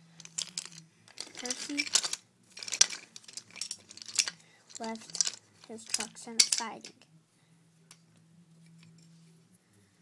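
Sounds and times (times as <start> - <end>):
rustling: 0.0 - 6.8
small objects clicking: 0.2 - 6.8.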